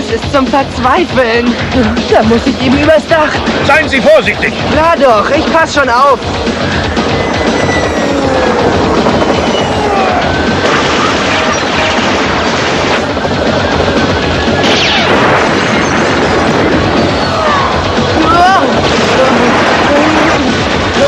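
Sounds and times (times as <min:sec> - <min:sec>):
cartoon action music: 0:00.0 - 0:21.0
laser blasts: 0:00.6 - 0:21.0
impact effects: 0:03.4 - 0:21.0.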